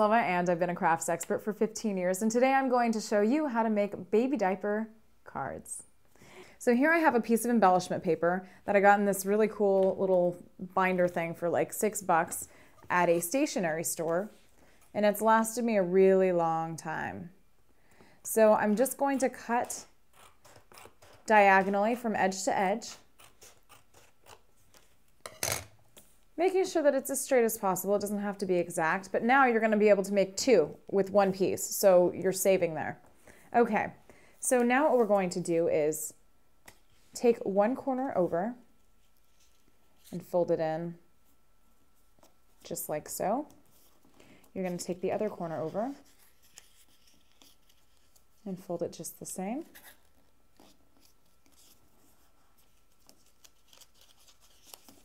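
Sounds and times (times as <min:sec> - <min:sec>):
cardstock being folded: 0:43.5 - 0:48.4, 0:49.6 - 0:55.0.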